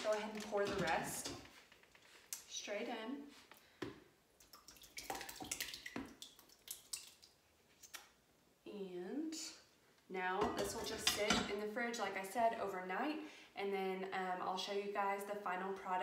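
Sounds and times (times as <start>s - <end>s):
person speaking: 0.0s - 1.4s
yogurt pouring and plopping: 4.4s - 7.4s.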